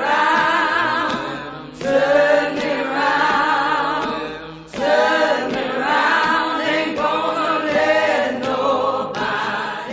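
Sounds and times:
choir singing: 0.0s - 9.9s.

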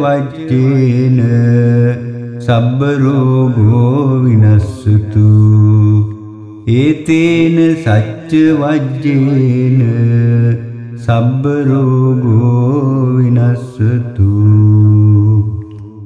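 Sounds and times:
solo voice chanting: 0.0s - 16.0s.

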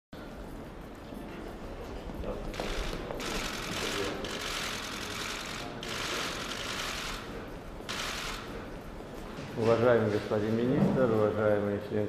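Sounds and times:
camera shutters clicking: 2.5s - 7.3s, 7.9s - 8.5s.

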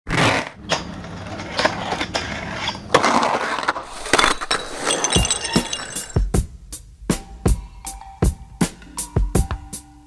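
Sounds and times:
glass breaking and clinking: 3.9s - 6.3s.

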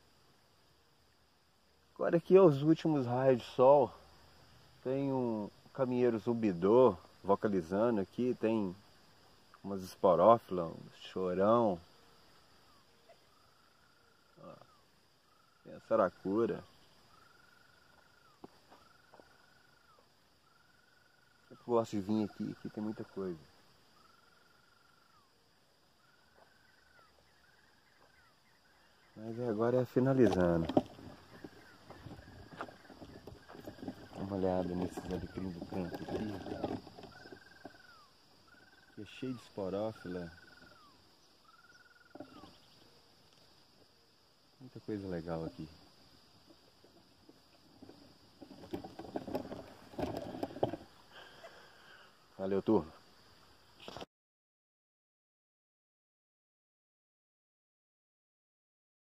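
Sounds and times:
high-pitched insect drone: 0.0s - 54.0s.

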